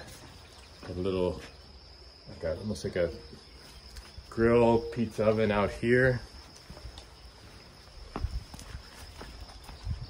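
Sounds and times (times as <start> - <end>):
footsteps walking: 6.2 - 10.0.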